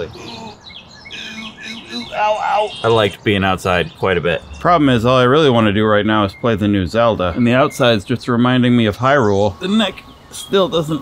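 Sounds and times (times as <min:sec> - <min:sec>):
birds chirping: 0:00.0 - 0:11.0
faint background noise: 0:00.0 - 0:11.0.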